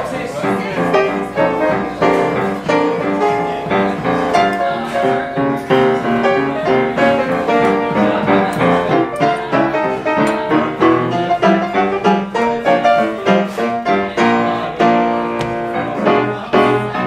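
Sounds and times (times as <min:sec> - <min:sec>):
solo piano jazz tune: 0:00.0 - 0:17.0.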